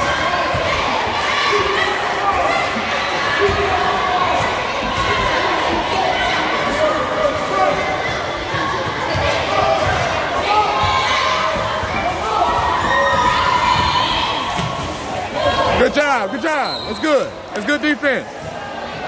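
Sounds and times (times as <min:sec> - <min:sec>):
spectators talking and calling out: 0:00.0 - 0:19.0.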